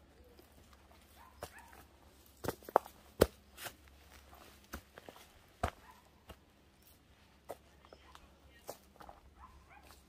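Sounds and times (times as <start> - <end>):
footsteps crunching on gravel: 0.5 - 6.5, 7.4 - 10.0.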